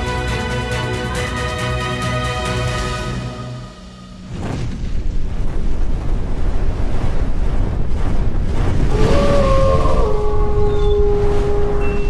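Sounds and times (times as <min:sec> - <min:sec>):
deep steady rumble: 0:04.1 - 0:12.0.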